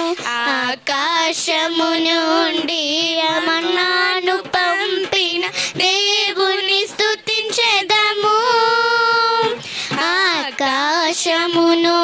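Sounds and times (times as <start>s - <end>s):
girls singing a worship song: 0.0s - 12.0s.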